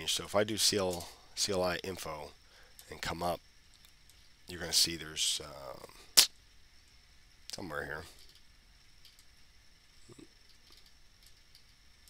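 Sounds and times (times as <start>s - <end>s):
faint clicks: 3.7s - 4.4s, 8.2s - 9.4s, 10.1s - 11.8s.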